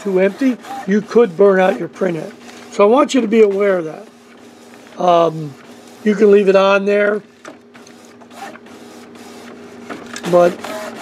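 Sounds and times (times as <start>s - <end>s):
faint mechanical whirring: 0.0s - 11.0s
printer motor hum: 0.0s - 11.0s.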